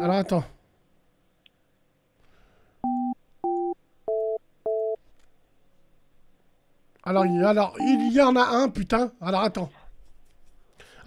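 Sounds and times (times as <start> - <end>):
telephone keypad beeps: 2.8 - 5.0, 7.2 - 8.2.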